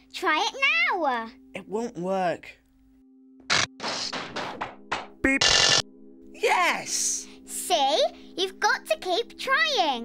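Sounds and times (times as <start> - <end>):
burst of electronic noise: 3.5 - 4.0, 5.3 - 5.8
cartoon knocks and clunks: 3.6 - 5.8.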